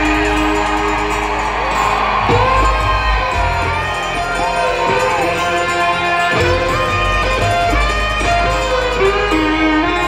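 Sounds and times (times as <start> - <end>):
fiddle melody with sliding notes: 0.0 - 10.0
resonator guitar: 0.0 - 10.0.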